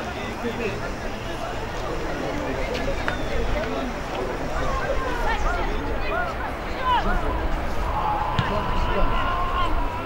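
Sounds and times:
people shouting: 7.8s - 10.0s.

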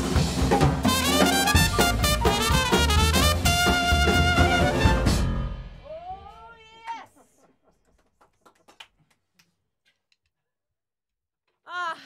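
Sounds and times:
hot jazz band playing: 0.0s - 5.8s.

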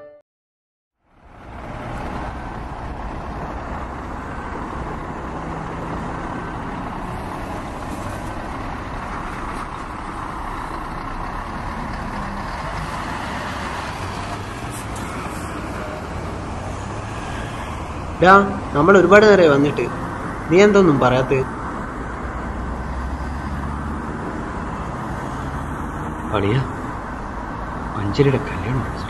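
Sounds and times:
steady outdoor rush: 1.0s - 29.0s.

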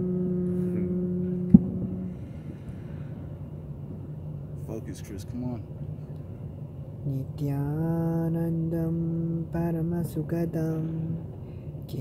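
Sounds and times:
voice chanting om: 0.0s - 3.4s, 7.0s - 12.0s.

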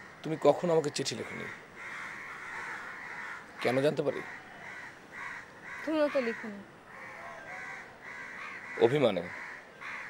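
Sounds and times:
crows cawing: 0.0s - 10.0s.

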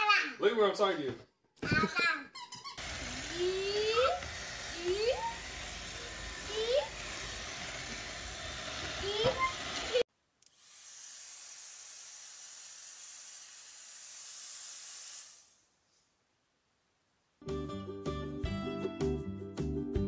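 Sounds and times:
high airy hiss: 2.8s - 10.0s, 10.7s - 16.2s
robot vacuum running: 2.8s - 10.0s.

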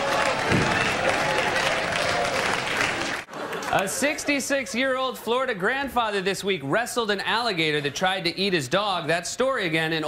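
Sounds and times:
audience applauding: 0.0s - 4.4s
audience laughing: 3.0s - 5.7s.

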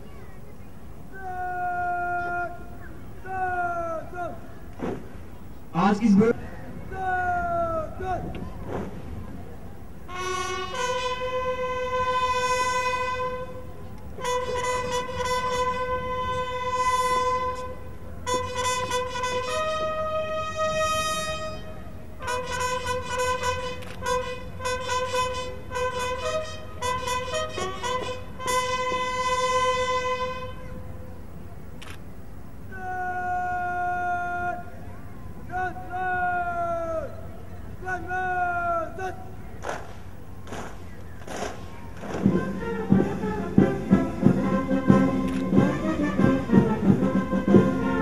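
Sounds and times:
person shouting a command: 1.1s - 4.4s, 5.8s - 8.4s, 32.7s - 34.7s, 35.5s - 37.2s, 37.8s - 39.3s
bugles sounding long notes: 5.4s - 8.3s, 10.0s - 31.2s, 32.4s - 48.0s.

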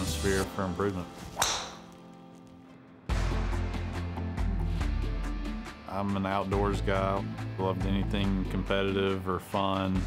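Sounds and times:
golf club striking ball: 1.4s - 2.0s.

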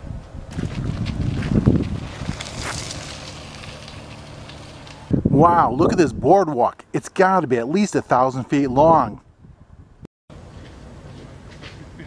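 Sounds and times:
wind buffeting microphone: 0.0s - 6.6s, 8.3s - 10.1s.

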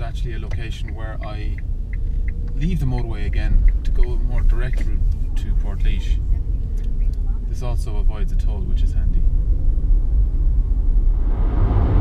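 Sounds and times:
car cabin road rumble: 0.0s - 12.0s.

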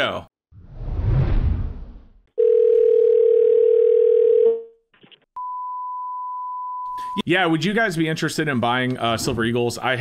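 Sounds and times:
telephone ringback tone: 2.4s - 4.7s.

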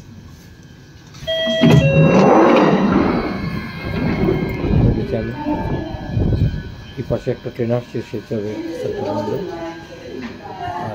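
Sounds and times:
train doors sliding open: 1.1s - 7.5s
two-note door chime: 1.2s - 7.6s.

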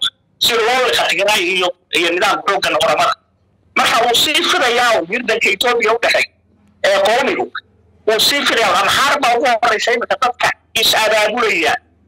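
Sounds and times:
man talking: 0.0s - 3.2s, 3.8s - 11.8s.

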